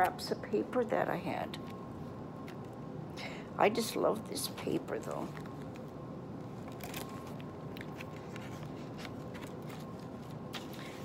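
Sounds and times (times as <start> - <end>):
low background hum: 0.0 - 11.0
paper pages rustling and turning: 6.6 - 11.0.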